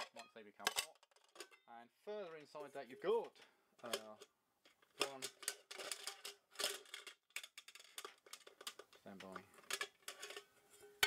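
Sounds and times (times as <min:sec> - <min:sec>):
saucepans clicking and tapping: 0:03.1 - 0:11.0.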